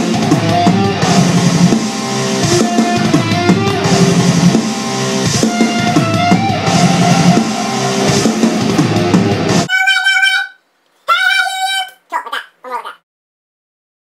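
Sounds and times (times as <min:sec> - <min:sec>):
drum kit: 0:00.0 - 0:09.7
electric guitar: 0:00.0 - 0:09.7.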